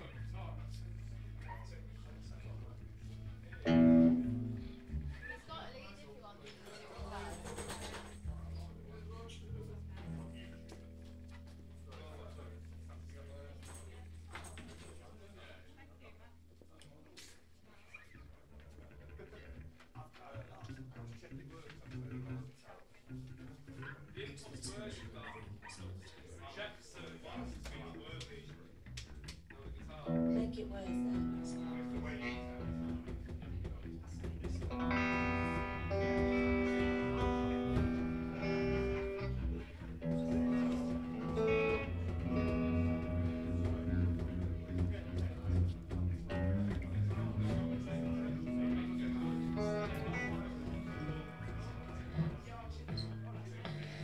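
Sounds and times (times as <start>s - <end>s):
live band with electric guitars: 2.9s - 5.6s, 30.0s - 54.0s
indistinct voices chattering: 17.7s - 54.0s.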